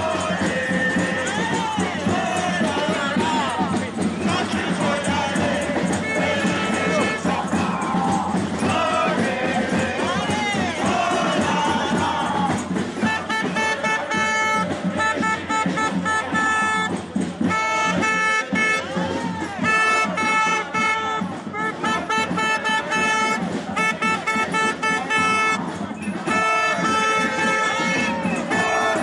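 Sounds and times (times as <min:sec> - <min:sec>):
voices of marching crowd: 0:00.0 - 0:29.0
horn blasts: 0:04.2 - 0:10.2, 0:10.8 - 0:29.0.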